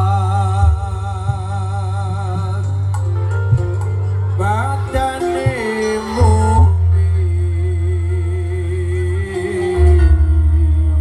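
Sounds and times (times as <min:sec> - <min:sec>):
steady deep bass: 0:00.0 - 0:11.0.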